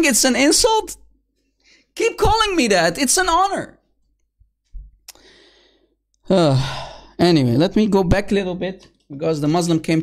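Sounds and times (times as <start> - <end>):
man sighing: 5.1 - 7.2.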